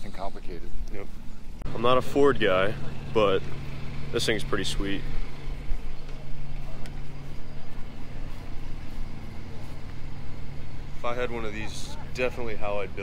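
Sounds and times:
low motor hum: 0:00.8 - 0:13.0.

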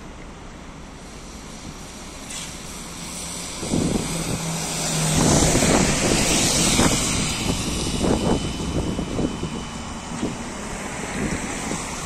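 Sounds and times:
trolleybus electric hum: 0:00.0 - 0:12.0
tyres hissing on damp road: 0:00.0 - 0:12.0.

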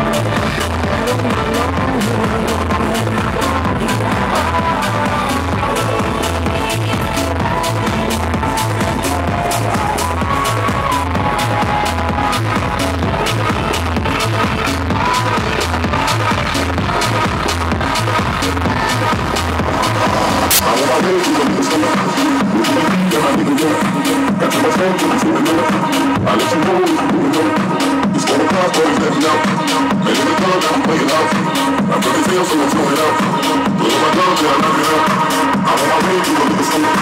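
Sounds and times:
electronic house dance music: 0:00.0 - 0:37.0.

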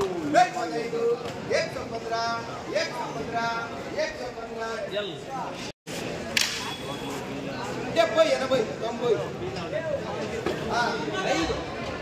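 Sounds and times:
traders' voices overlapping: 0:00.0 - 0:12.0
sharp crack: 0:06.3 - 0:06.8.

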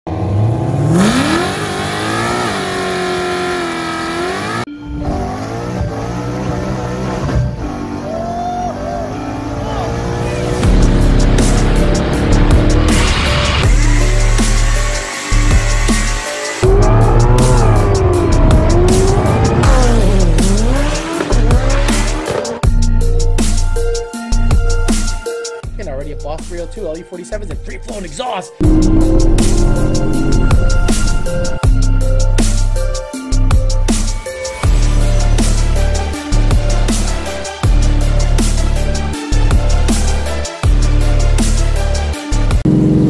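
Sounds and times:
car engine revving: 0:00.1 - 0:08.1, 0:09.3 - 0:22.6, 0:28.6 - 0:32.1, 0:42.6 - 0:43.0
electronic music with heavy bass: 0:10.0 - 0:43.0.

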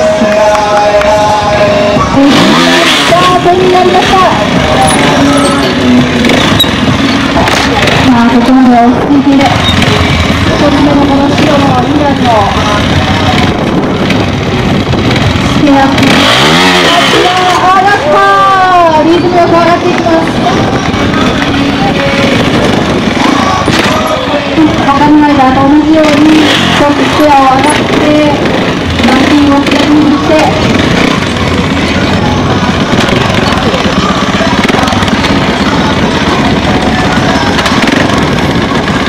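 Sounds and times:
person talking loudly: 0:00.0 - 0:06.2
motorcycle engine revving: 0:00.0 - 0:39.0.

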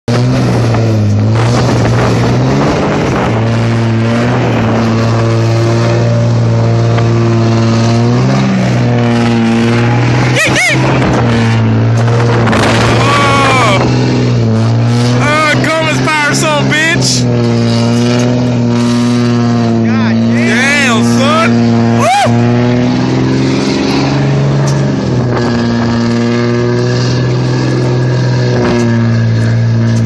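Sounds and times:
diesel engine at high revs: 0:00.0 - 0:30.0
people shouting and whooping: 0:09.7 - 0:10.9, 0:12.9 - 0:13.9, 0:20.3 - 0:22.7.

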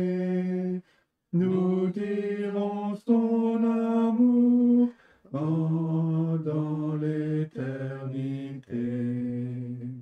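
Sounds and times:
slow hymn tune: 0:00.0 - 0:10.0.

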